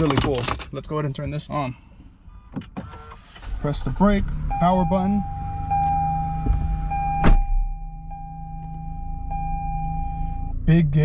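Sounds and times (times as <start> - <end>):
car engine starting and idling: 0.0 - 11.0
dashboard chime tone: 4.5 - 10.7.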